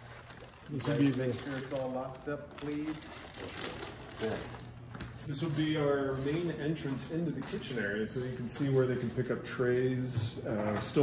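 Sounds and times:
paper crinkling underfoot: 0:00.0 - 0:09.3.

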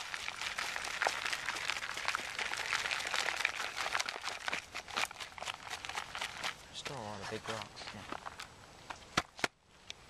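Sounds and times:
soil sifting through wire mesh: 0:00.0 - 0:08.1.

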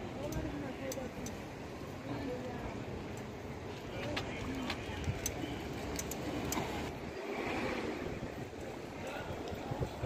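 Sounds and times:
low rumble of city noise: 0:00.0 - 0:10.0.

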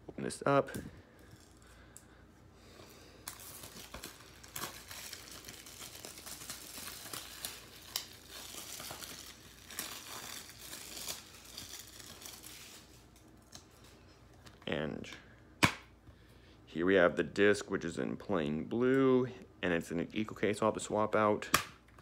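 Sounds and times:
plastic shrink wrap crinkling: 0:03.1 - 0:14.6.

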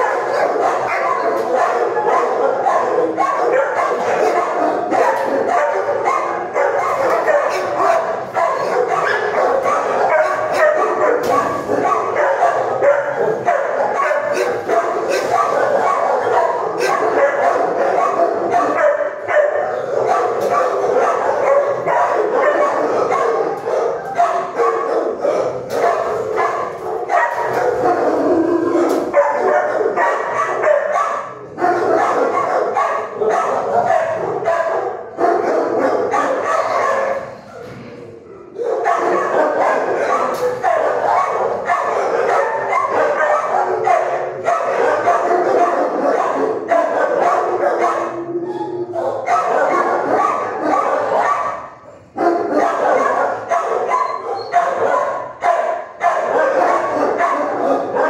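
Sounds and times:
many dogs barking and yipping: 0:00.0 - 0:58.0.

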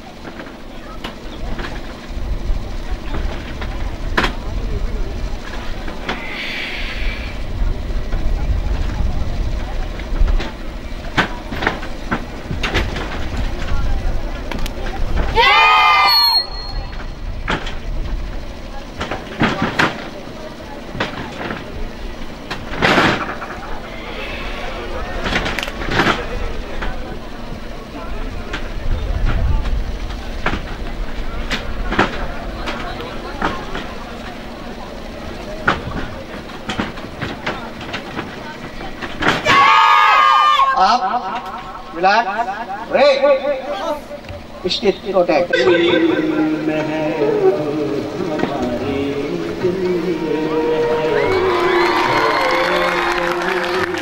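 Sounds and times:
steady low rumble: 0:00.0 - 0:15.4, 0:16.4 - 0:39.2
loud rising shout: 0:15.3 - 0:17.2, 0:23.8 - 0:25.3, 0:39.4 - 0:41.0, 0:50.0 - 0:54.0
background voices: 0:43.6 - 0:54.0.

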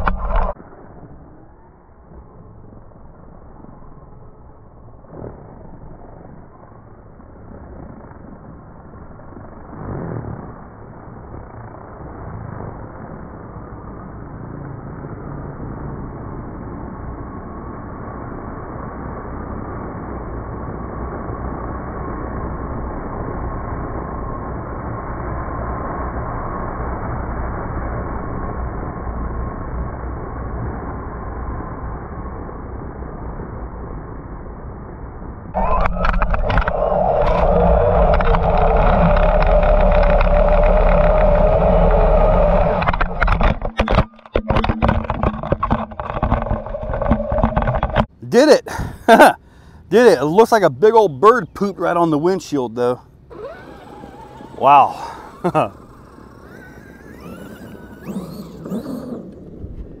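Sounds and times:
electric motor whining: 0:35.6 - 0:48.1, 0:53.2 - 1:00.0.

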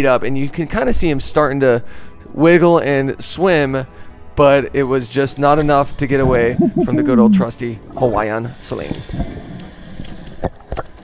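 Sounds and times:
muffled underwater water rumble: 0:06.1 - 0:07.7.

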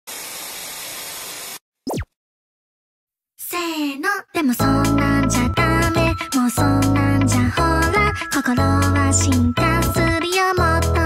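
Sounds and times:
electronic zap of tv switching off: 0:00.2 - 0:02.1.

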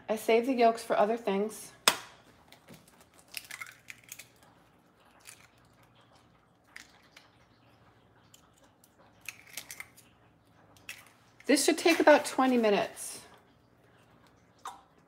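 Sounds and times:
eggshell clicks and crackles: 0:01.8 - 0:12.0.

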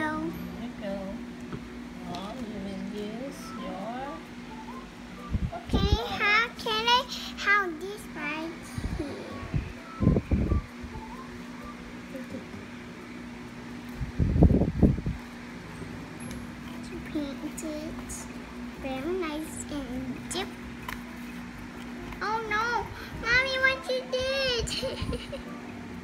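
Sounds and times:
steady low hum: 0:00.0 - 0:26.0.

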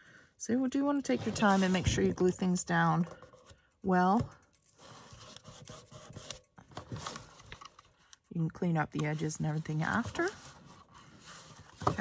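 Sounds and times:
paper rustling and rubbing: 0:01.1 - 0:02.0.

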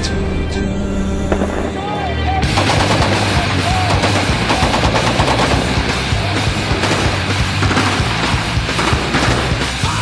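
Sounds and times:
music soundtrack: 0:00.0 - 0:10.0
machine gun firing: 0:02.5 - 0:09.8.

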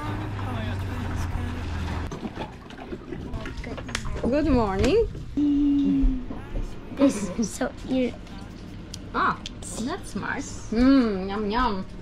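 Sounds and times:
outboard motor humming: 0:00.0 - 0:09.3.

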